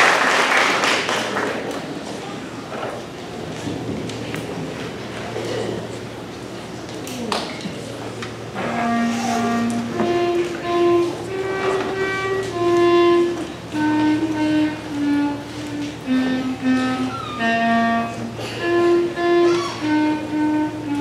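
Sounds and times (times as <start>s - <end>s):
concert band playing slow melody: 8.2s - 21.0s.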